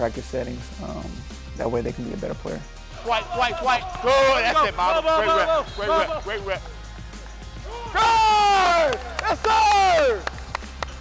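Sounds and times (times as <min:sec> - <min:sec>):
faint background music: 0:00.0 - 0:11.0
man shouting encouragement: 0:03.0 - 0:06.6, 0:07.7 - 0:10.2.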